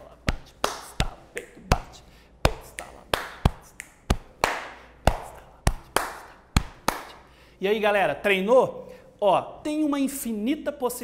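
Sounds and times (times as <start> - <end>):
man slapping his chest: 0.2 - 7.3
hands clapping: 0.3 - 1.9, 2.5 - 7.3.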